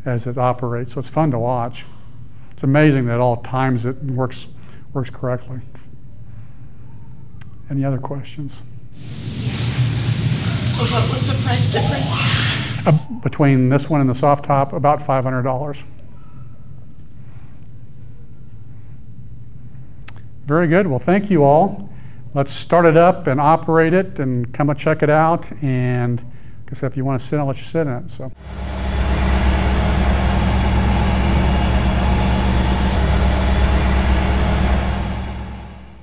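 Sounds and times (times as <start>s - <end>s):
low room tone hum: 25.2s - 36.0s
car engine idling: 28.4s - 36.0s.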